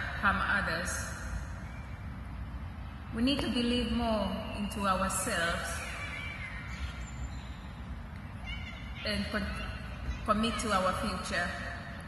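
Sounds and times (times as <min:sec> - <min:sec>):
woman speaking: 0:00.0 - 0:01.2, 0:03.2 - 0:05.9, 0:09.0 - 0:11.8.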